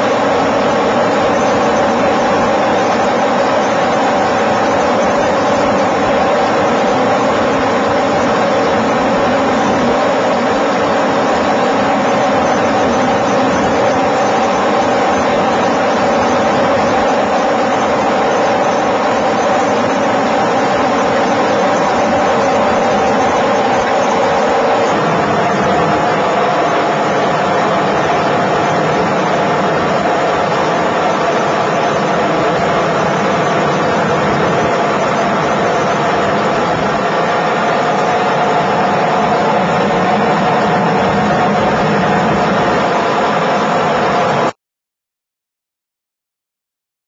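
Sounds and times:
helicopter engine and rotor noise: 0:00.0 - 0:44.5.

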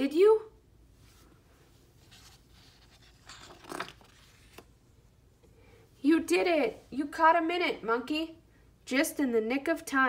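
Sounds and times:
book page rustling: 0:02.0 - 0:04.8.

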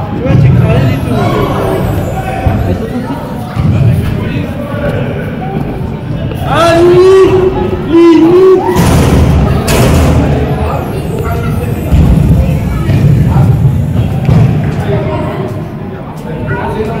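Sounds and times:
scattered voices: 0:00.0 - 0:17.0.

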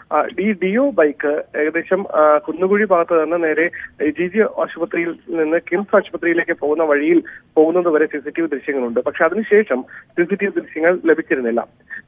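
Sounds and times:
man speaking over telephone: 0:00.1 - 0:12.0.

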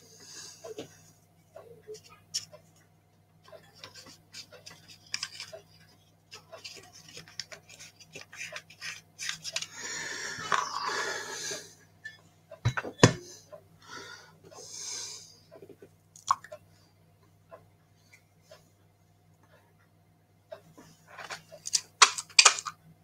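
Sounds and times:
low electrical hum: 0:00.0 - 0:23.0.

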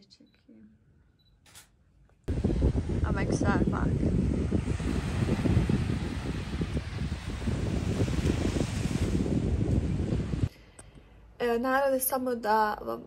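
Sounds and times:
wind buffeting microphone: 0:02.3 - 0:10.5
small waves washing: 0:04.2 - 0:10.5.

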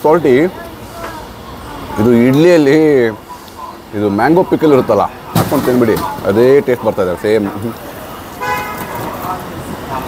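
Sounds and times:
vehicle horn: 0:08.4 - 0:09.1.

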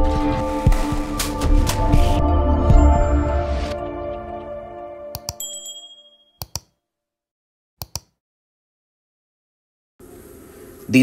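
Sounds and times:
intro music: 0:00.0 - 0:05.3
short bright ding: 0:05.4 - 0:06.4
quick clicks: 0:07.8 - 0:08.2.

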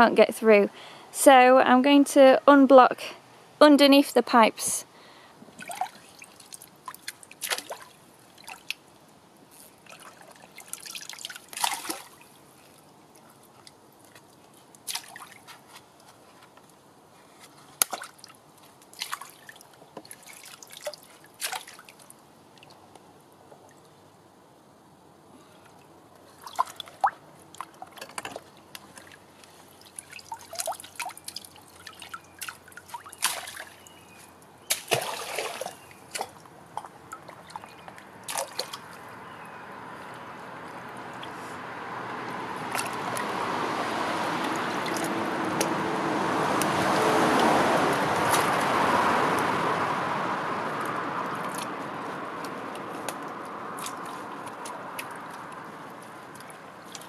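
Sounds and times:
hands splashing in brook water: 0:05.5 - 0:08.8, 0:09.7 - 0:12.8, 0:14.0 - 0:16.0, 0:17.6 - 0:22.0, 0:26.4 - 0:34.0, 0:34.6 - 0:39.1, 0:42.3 - 0:43.4, 0:44.4 - 0:45.8
water dripping: 0:25.7 - 0:39.2, 0:42.1 - 0:49.8, 0:50.6 - 0:57.0.

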